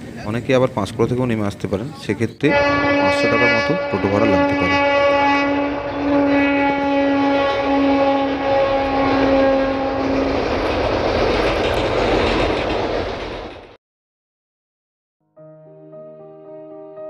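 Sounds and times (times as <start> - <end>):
train rumbling over steel bridge: 0.0 - 13.8
train horn blasts: 2.4 - 10.4.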